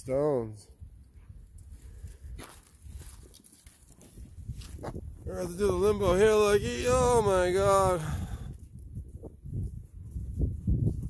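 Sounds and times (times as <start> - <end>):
footsteps on leaves and stone: 1.6 - 5.0.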